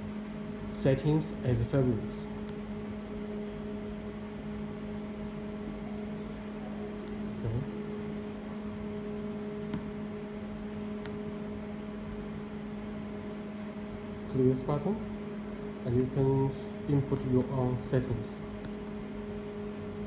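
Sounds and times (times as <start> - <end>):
machine humming: 0.0 - 20.0.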